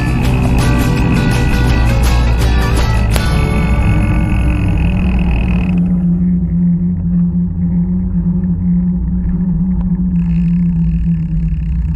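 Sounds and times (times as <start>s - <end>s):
music chord: 0.0s - 10.3s
low-pitched hum: 0.0s - 11.9s
steady low rumble: 0.0s - 11.9s.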